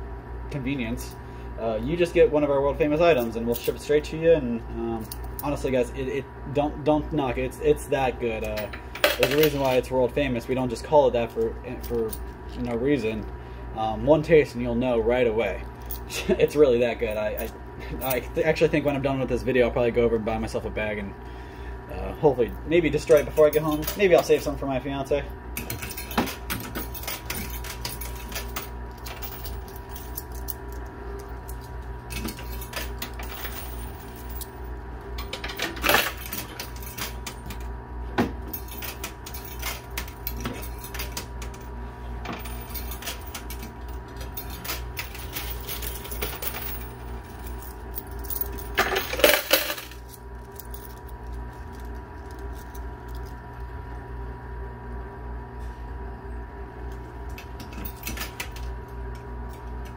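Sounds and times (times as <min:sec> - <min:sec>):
steady machine hum: 0:00.0 - 0:59.9
coins clinking and clattering: 0:08.5 - 0:09.8, 0:25.6 - 0:34.6, 0:35.2 - 0:37.7, 0:38.5 - 0:41.7, 0:42.3 - 0:53.4.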